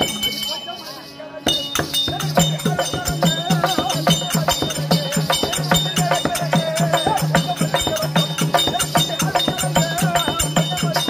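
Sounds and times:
ringing metal cymbals: 0:00.0 - 0:11.0.

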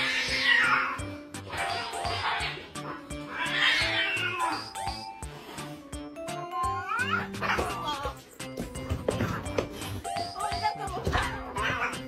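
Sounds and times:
cats fighting and yowling: 0:00.0 - 0:05.0, 0:06.6 - 0:08.3, 0:11.1 - 0:12.0
background music with steady beat: 0:04.0 - 0:12.0.

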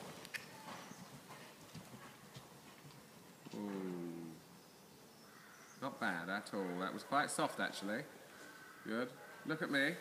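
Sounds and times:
muffled hoofbeats on sand: 0:00.0 - 0:04.1.

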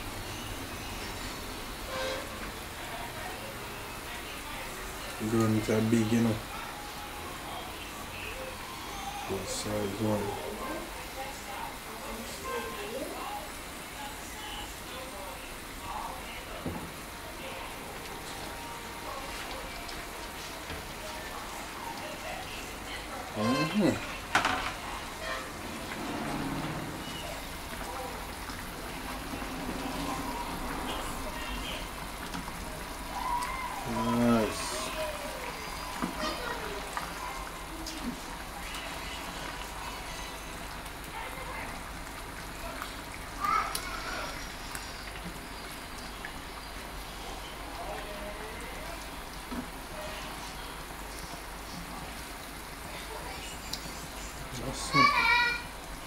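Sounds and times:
fish sizzling and bubbling in a pan: 0:00.0 - 0:56.0.

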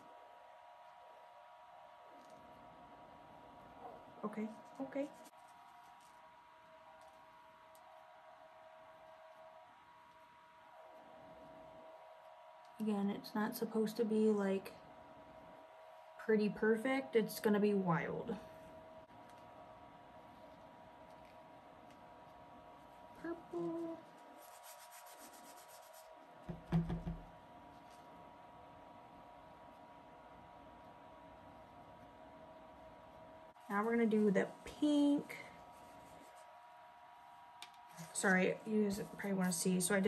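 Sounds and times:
electric fan running: 0:00.0 - 0:40.0
thin steady hum: 0:00.0 - 0:40.0
paper towel rubbing: 0:23.6 - 0:26.1.

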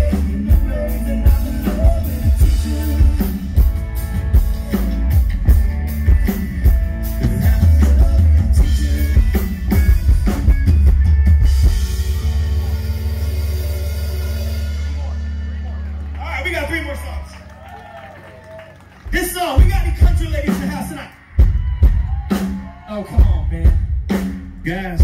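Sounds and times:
rock band playing: 0:00.0 - 0:25.0.

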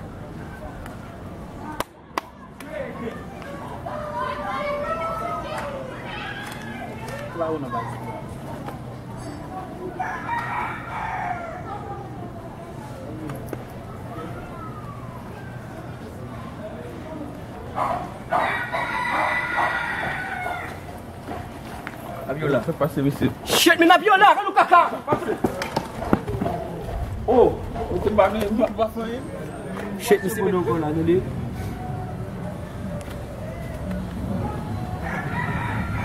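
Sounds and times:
steady background noise: 0:00.0 - 0:36.0
rooster crowing: 0:10.0 - 0:11.9, 0:18.3 - 0:20.9, 0:34.9 - 0:36.0.

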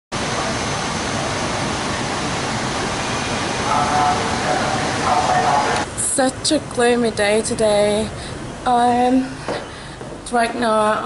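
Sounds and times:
steady rushing noise: 0:00.1 - 0:10.6.

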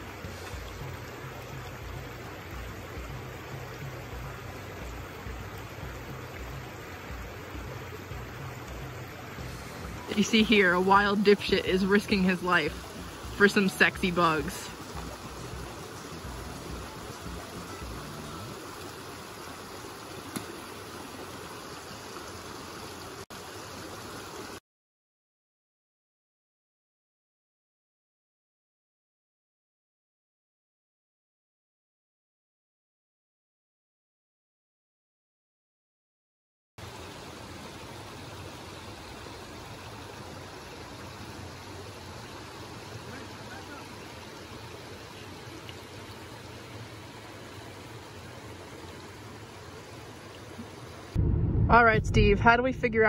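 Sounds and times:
stream rushing over rocks: 0:00.0 - 0:24.6, 0:36.8 - 0:51.2.

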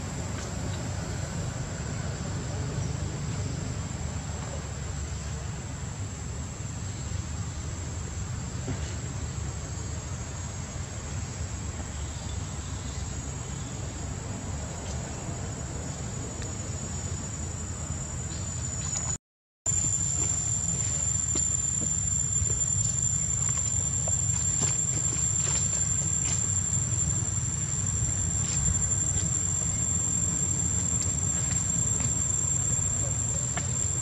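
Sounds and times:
insects droning: 0:00.0 - 0:34.0.

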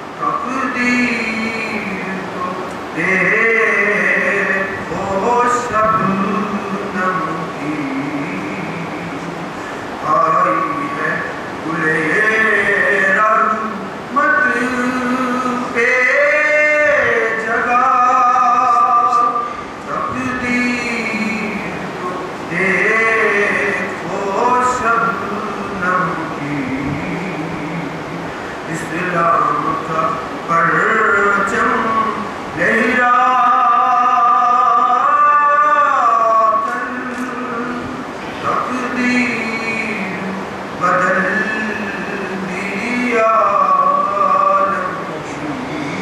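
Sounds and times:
man chanting: 0:00.0 - 0:46.0.

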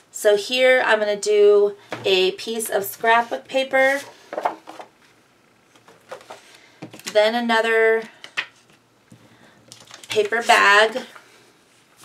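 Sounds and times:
paper rustling and shuffling: 0:09.7 - 0:12.0.

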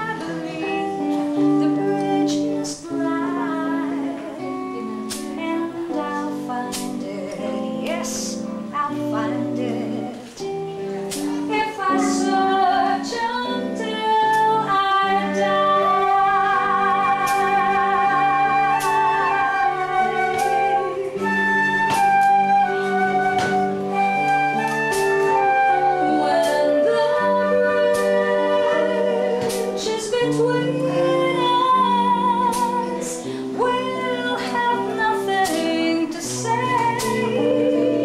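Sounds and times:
electric guitar: 0:00.0 - 0:38.0
woman singing: 0:00.0 - 0:38.0.

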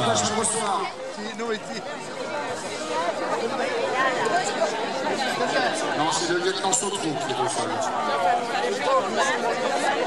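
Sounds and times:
people talking and chattering: 0:00.0 - 0:10.0.

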